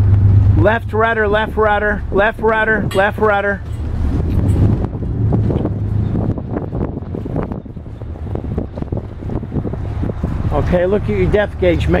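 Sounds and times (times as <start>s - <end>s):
boat engines droning: 0.0s - 12.0s
wind buffeting microphone: 0.0s - 12.0s.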